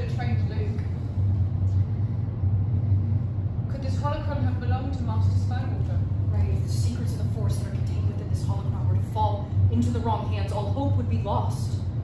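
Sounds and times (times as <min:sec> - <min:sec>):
deep background hum: 0:00.0 - 0:12.0.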